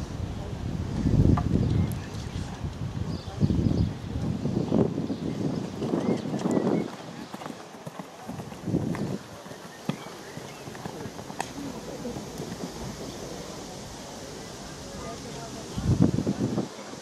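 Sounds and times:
hoofbeats cantering on grass: 5.1 - 15.8
background voices: 8.2 - 17.0.

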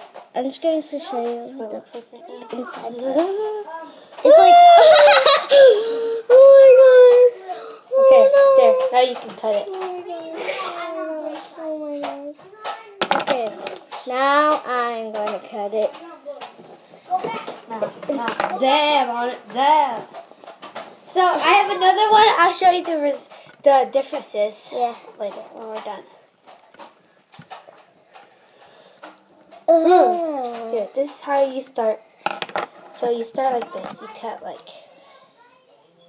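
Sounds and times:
child making wordless vocal sounds: 1.1 - 9.0, 9.6 - 13.0, 29.7 - 31.0.

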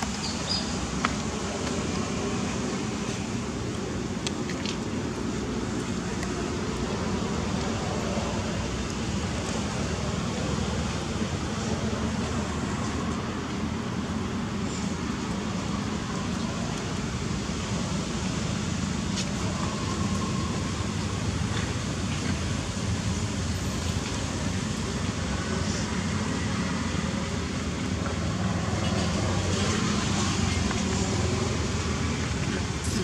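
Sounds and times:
low rumbling background noise: 0.0 - 33.0.

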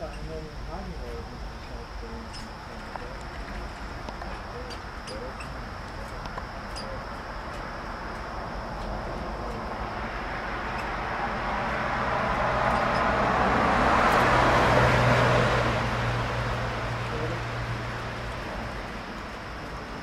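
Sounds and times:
motor vehicle passing by: 8.9 - 20.0.

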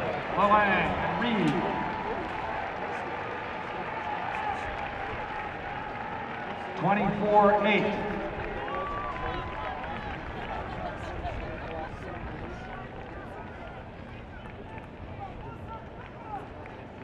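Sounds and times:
stadium crowd murmur: 0.0 - 17.0.

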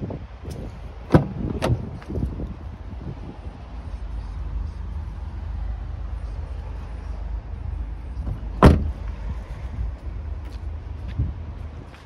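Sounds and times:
car door slamming: 1.1 - 1.9, 8.2 - 9.1
soft thump: 8.6 - 9.0.

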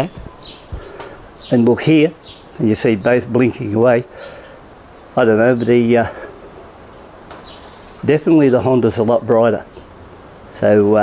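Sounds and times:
faint bird calls: 0.0 - 2.6, 4.0 - 8.2
man saying uh: 5.2 - 6.3.

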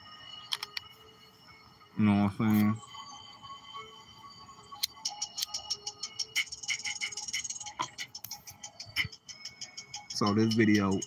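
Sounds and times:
faint steady tones: 0.0 - 11.0.

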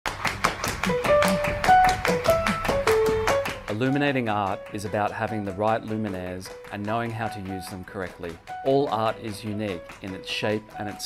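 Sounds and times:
quick percussive taps: 0.1 - 11.0
plucked notes stepping upward: 0.8 - 11.0.

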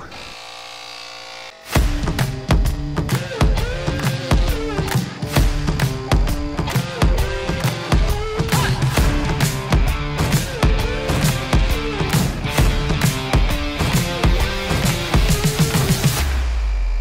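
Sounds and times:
tire inflator buzzing hum: 0.0 - 8.4
rock music with drums and guitar: 1.7 - 16.5.

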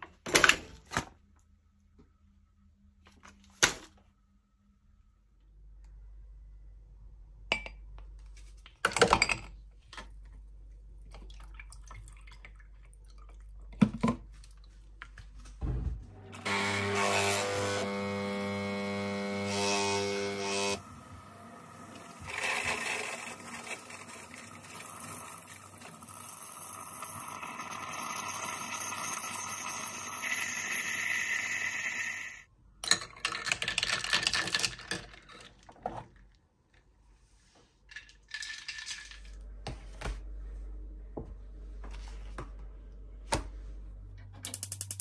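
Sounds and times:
coffee machine pump buzzing: 16.4 - 32.4.

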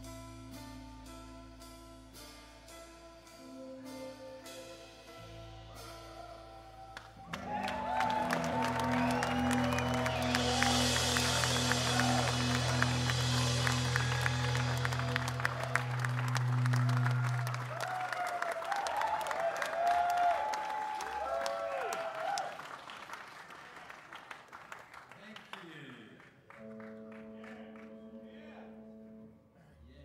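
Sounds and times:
audience applause and cheering: 5.7 - 25.9.

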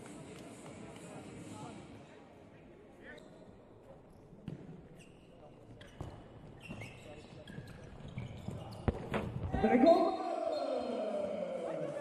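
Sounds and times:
shoe squeaks: 4.9 - 9.0
players calling out: 9.6 - 12.0.

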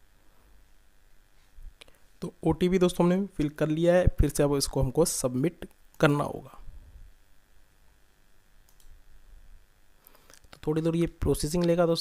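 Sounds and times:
low hum: 0.0 - 10.2
computer mouse clicks: 8.6 - 9.0.

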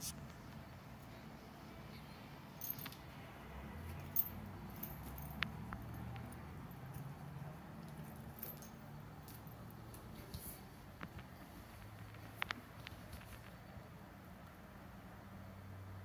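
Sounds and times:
light jingling: 2.6 - 3.2, 3.9 - 10.5.

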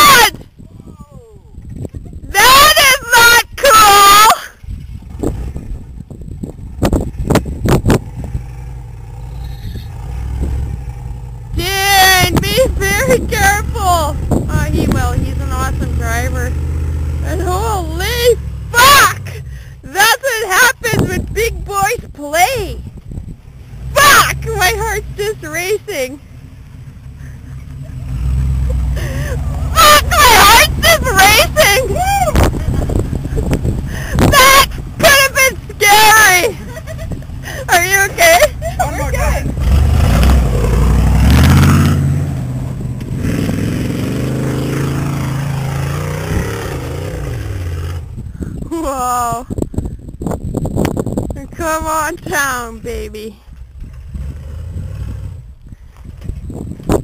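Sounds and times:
distant truck engine rumbling: 0.0 - 57.0.

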